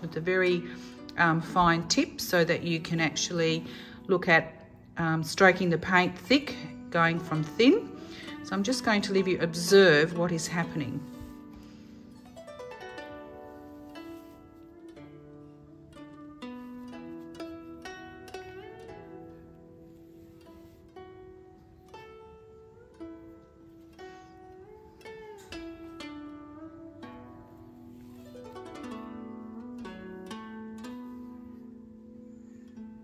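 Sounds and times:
plucked zither notes: 0.0 - 33.0.

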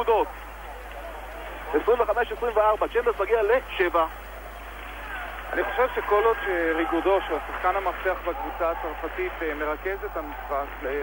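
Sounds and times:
arena crowd noise: 0.0 - 11.0
man commentating: 5.2 - 11.0.

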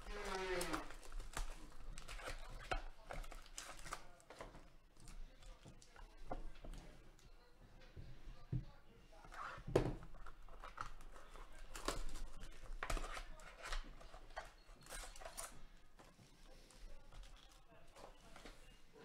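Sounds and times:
foil packs crinkling and rustling: 0.0 - 4.6, 10.1 - 18.7.

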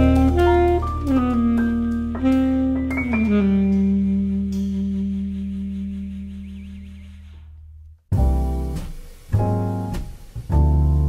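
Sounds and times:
jazz held chord: 0.0 - 5.5, 8.1 - 11.0.

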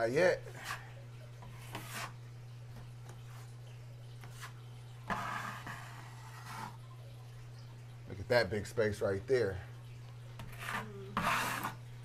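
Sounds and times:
knife scraping wall compound: 0.4 - 2.2, 4.2 - 6.8, 10.4 - 11.8.

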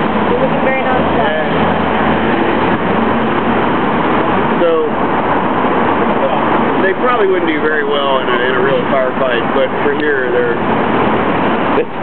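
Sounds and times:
dense road traffic: 0.0 - 12.0.

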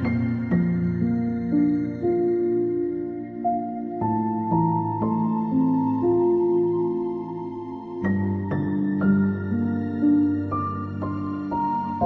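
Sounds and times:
slow gentle piano music: 0.0 - 12.0.

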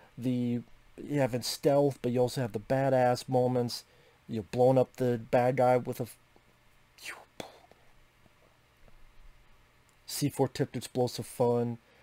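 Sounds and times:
man speaking: 0.2 - 6.2, 7.0 - 7.7, 10.1 - 11.8
breathy whispered sound: 7.0 - 8.0.

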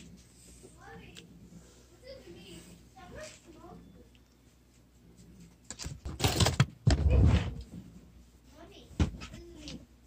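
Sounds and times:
rustling and clattering: 4.4 - 9.9.

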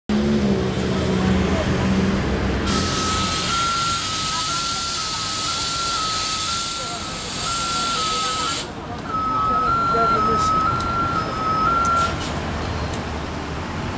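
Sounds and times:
vehicle engine humming: 0.1 - 13.9
loud steady hiss: 2.7 - 8.8
high two-pitch tone: 2.7 - 12.2.

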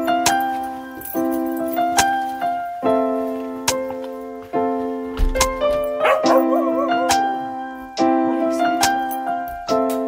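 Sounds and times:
lofi piano music: 0.0 - 10.0
dog whining and yipping: 6.0 - 7.3.

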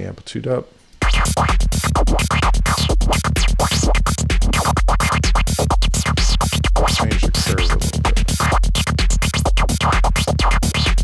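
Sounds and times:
psytrance music: 1.0 - 11.0
steady kick drum: 1.0 - 11.0.

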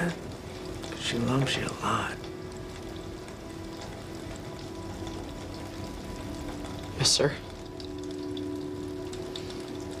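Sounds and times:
soft sustained film score notes: 0.0 - 10.0.

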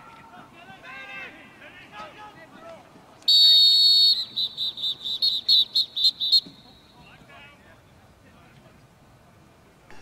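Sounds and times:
referee's whistle blasts: 3.3 - 7.0.

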